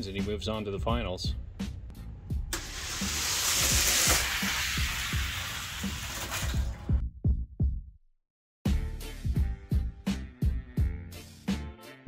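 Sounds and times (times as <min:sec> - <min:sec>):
toy cars rolling down plastic track: 0:02.6 - 0:06.9
hip-hop beat: 0:08.7 - 0:11.9.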